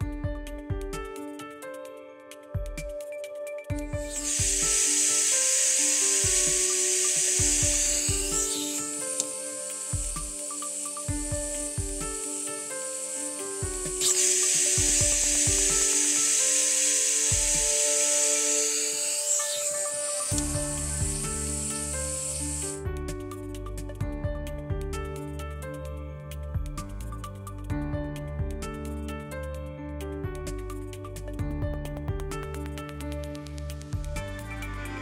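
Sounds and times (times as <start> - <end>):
pressure relief valve hissing: 4.0 - 22.8.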